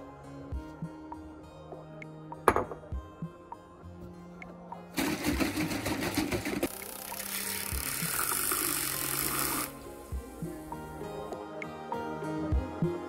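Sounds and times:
soft background music: 0:00.0 - 0:13.0
milk frother buzzing: 0:05.0 - 0:09.8.

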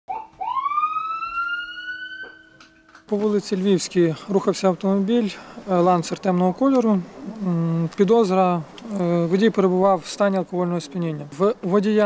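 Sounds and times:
police siren wailing: 0:00.1 - 0:03.1.

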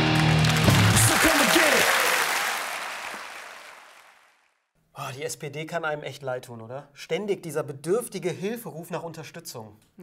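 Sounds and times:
audience applause: 0:00.0 - 0:04.4.

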